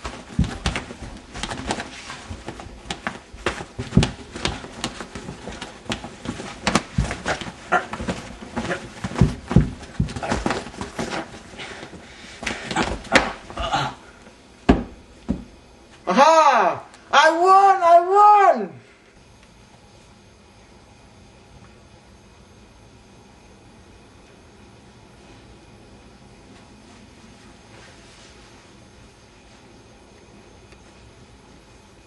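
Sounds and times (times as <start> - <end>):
puppets thumping and scuffling: 0.0 - 13.9, 14.6 - 15.6.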